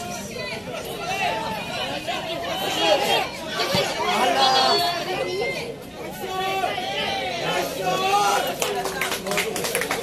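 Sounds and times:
voices calling out and chattering: 0.0s - 10.0s.

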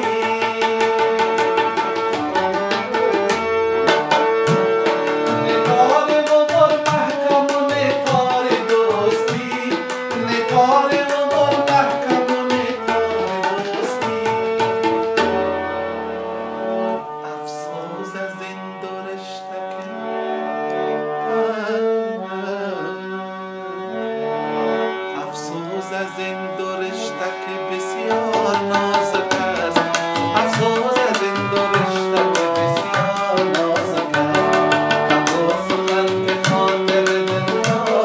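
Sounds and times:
man singing: 0.0s - 3.4s, 4.1s - 15.2s, 17.2s - 20.1s, 21.0s - 23.5s, 25.2s - 38.0s
rapid tabla strokes: 0.0s - 15.4s, 28.3s - 38.0s
harmonium chords: 0.0s - 38.0s
sustained instrumental accompaniment: 0.0s - 38.0s.

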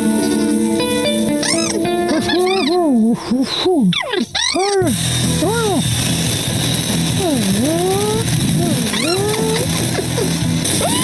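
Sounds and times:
steady hissing noise: 0.0s - 11.0s
cartoon music: 0.2s - 3.3s, 7.0s - 11.0s
sliding cartoon vocal sounds: 1.4s - 5.9s, 7.1s - 11.0s.

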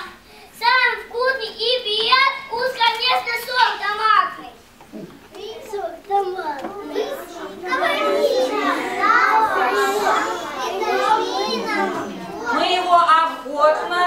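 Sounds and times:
young children chattering: 0.0s - 14.0s.

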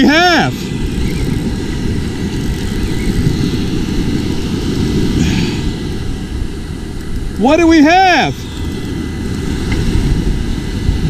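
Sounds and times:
surf breaking on beach: 0.0s - 11.0s
wind buffeting microphone: 0.0s - 11.0s.

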